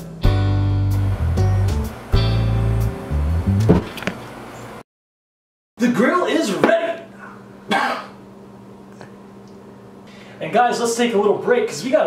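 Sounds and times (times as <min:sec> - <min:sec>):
man coughing: 0:07.7 - 0:08.2.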